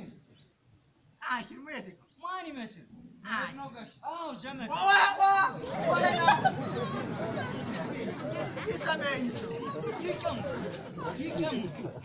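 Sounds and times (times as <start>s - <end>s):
people talking: 1.2s - 12.0s
crowd chatter murmur: 5.5s - 12.0s.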